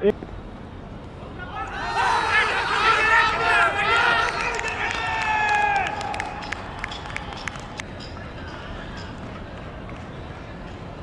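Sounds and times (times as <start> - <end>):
people shouting excitedly: 1.4 - 6.4.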